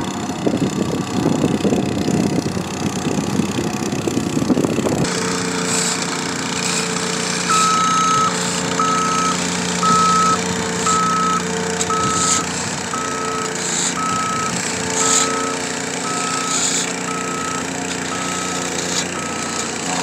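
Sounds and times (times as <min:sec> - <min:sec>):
plate compactor engine running: 0:00.0 - 0:20.0
backup alarm beeping: 0:07.5 - 0:19.6.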